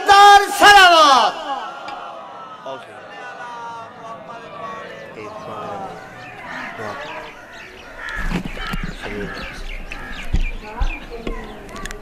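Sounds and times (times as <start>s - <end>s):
birds calling: 1.6s - 12.0s
crows cawing: 4.6s - 11.9s
microphone handling bumps: 8.1s - 11.6s.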